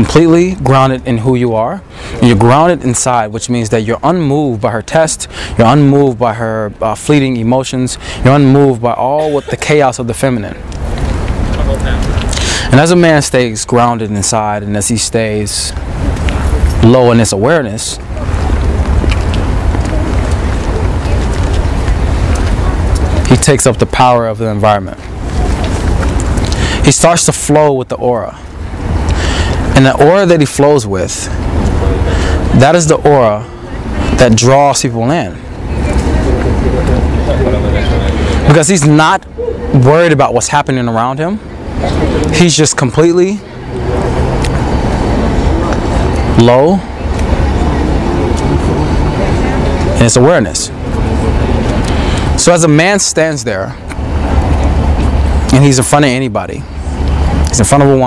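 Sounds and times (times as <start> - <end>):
road traffic rumble: 0.0 - 58.0
wind buffeting microphone: 9.2 - 12.7, 15.7 - 24.2, 24.9 - 27.2, 28.3 - 30.2, 31.0 - 34.2, 35.3 - 38.5, 43.3 - 52.4, 53.6 - 55.5.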